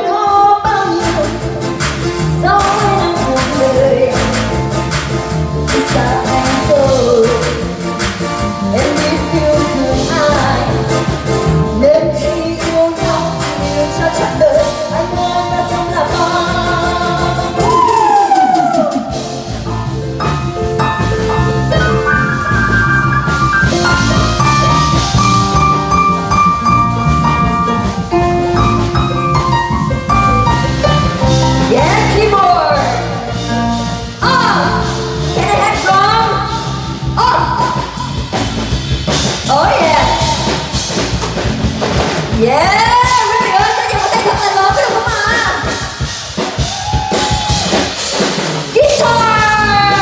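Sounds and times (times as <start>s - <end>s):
live band playing twist song: 0.0s - 50.0s
drum kit hits: 16.1s - 50.0s.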